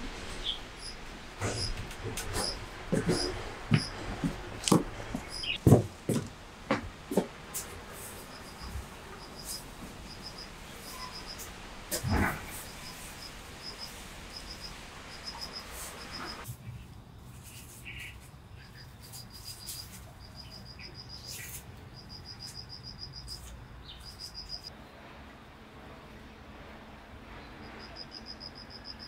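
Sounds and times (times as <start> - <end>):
crickets chirping: 0.0 - 5.6, 7.5 - 16.5, 18.6 - 24.7, 27.4 - 29.0.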